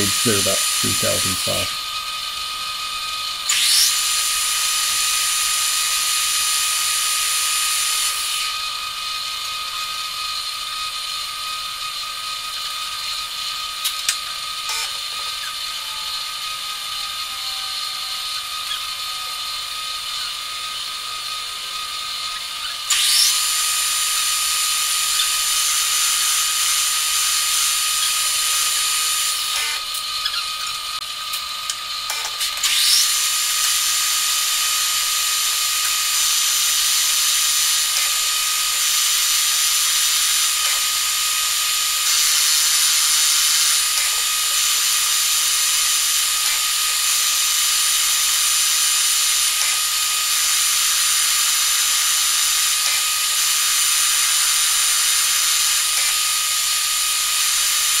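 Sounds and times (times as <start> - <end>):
high-pitched shop tone: 0.0 - 1.8
lathe spindle whine: 0.0 - 58.0
sharp click: 40.6 - 40.9.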